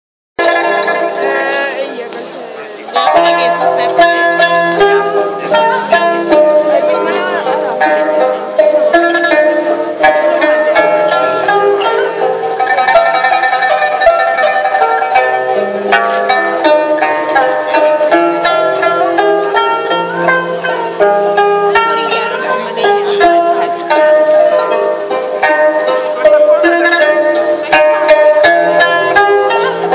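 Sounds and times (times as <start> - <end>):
plucked string duet: 0.4 - 29.9.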